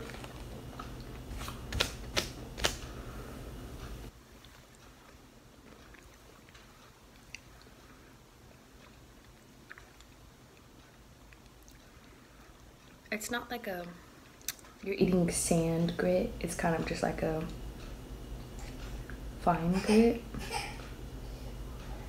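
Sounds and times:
crunchy chewing: 0.0 - 1.8, 4.2 - 13.0
low background hum: 0.0 - 22.0.

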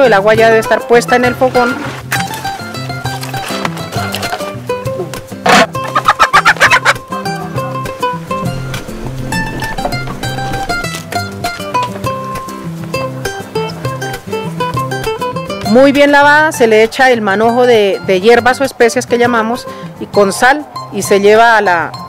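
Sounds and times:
plucked-string background music: 0.0 - 22.0
hen squawking: 5.8 - 7.0.

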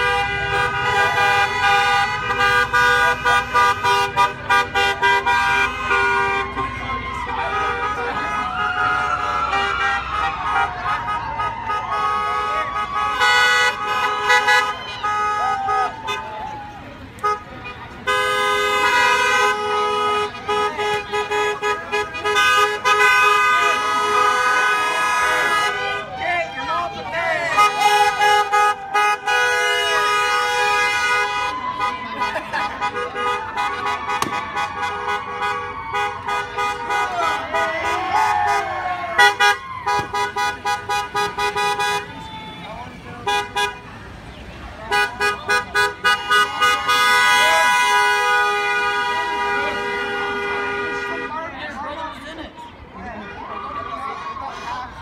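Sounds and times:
people shouting and cheering: 0.0 - 18.0, 18.8 - 43.8, 44.8 - 50.2, 51.0 - 55.0
car horns honking: 0.0 - 51.8
cars driving slowly past: 0.0 - 55.0.

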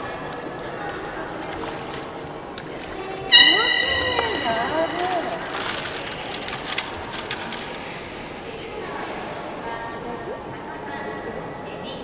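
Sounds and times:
loud high whistle: 3.3 - 5.2.

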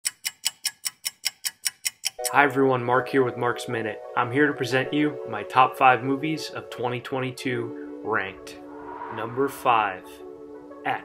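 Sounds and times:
stopwatch ticking: 0.0 - 2.2.

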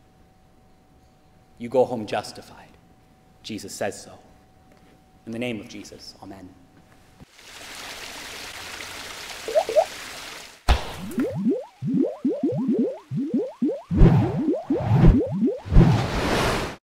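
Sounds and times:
short rising bloops: 9.5 - 9.9, 11.0 - 16.1.

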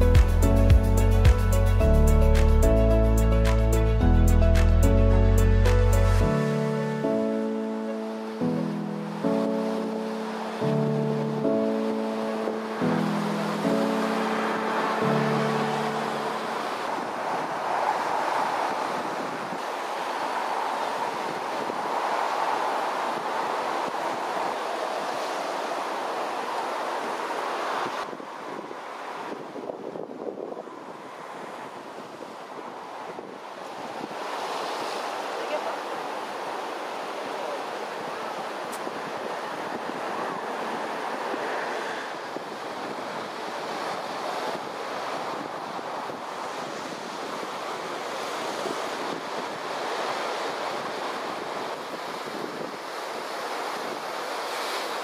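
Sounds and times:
wind on microphone: 0.0 - 55.0
surf washing over rocks: 5.7 - 55.0
surf breaking on rocks: 33.1 - 55.0.

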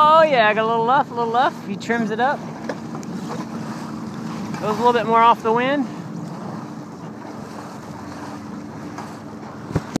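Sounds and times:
water washing along hull: 0.0 - 10.0.

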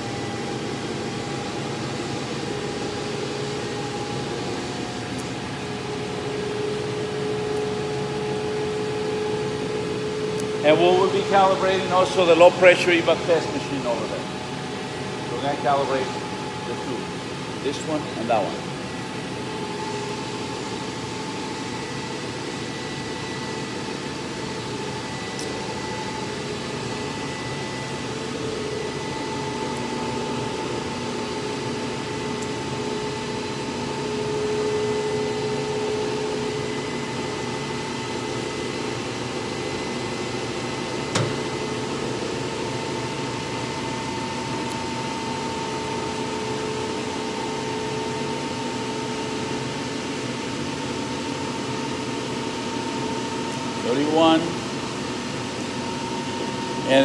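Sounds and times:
dynamometer rollers whirring: 0.0 - 57.0.

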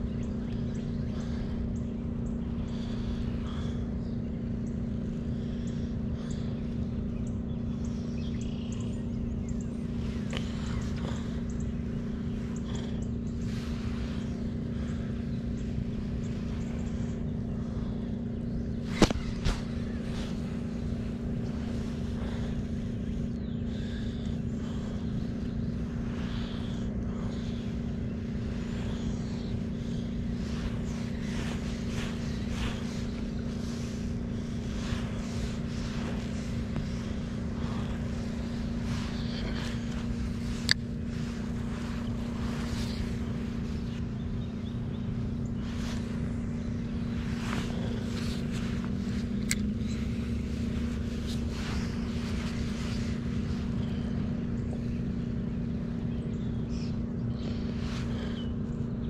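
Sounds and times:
low rumble: 0.0 - 58.8
steady motor hum: 0.0 - 59.0.

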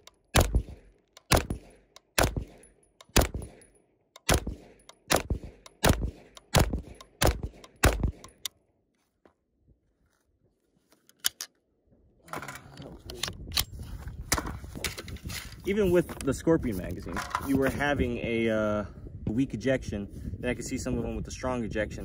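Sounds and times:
metallic clicks of gun handling: 0.0 - 5.8, 6.4 - 8.6, 11.0 - 11.6
carbine gunshots: 0.0 - 8.5.

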